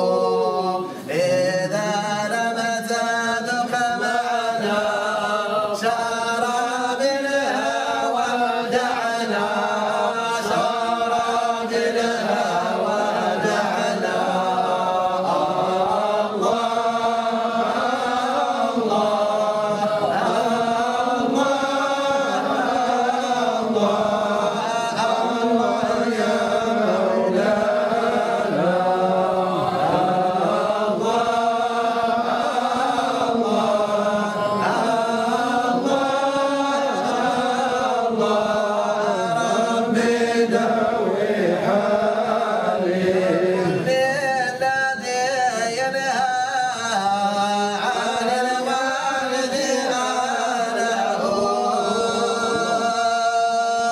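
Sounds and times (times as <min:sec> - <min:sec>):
men chanting together: 0:00.0 - 0:53.9.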